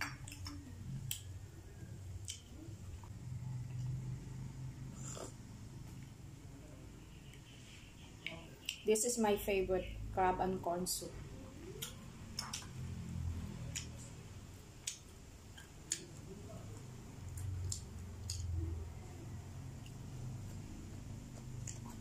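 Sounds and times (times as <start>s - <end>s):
chewing with wet mouth noises: 0.1s - 1.4s, 2.1s - 4.0s, 8.1s - 8.9s, 13.5s - 22.0s.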